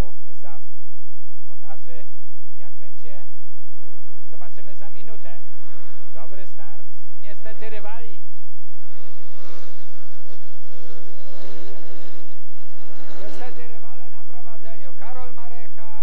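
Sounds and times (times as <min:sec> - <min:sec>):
motorcycle engines racing: 0:01.5 - 0:16.0
person speaking: 0:04.3 - 0:08.3, 0:13.1 - 0:16.0.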